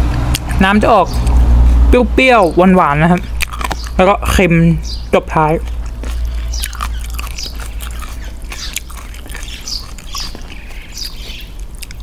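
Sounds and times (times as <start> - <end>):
bird chirps: 3.6 - 5.2, 6.3 - 11.6.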